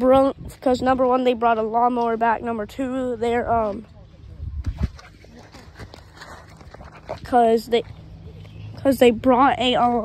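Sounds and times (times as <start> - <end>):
footsteps: 3.5 - 8.6.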